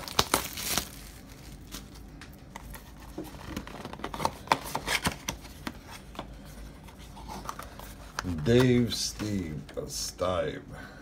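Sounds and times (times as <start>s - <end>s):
plastic wrap and cardboard rustling: 0.0s - 9.2s.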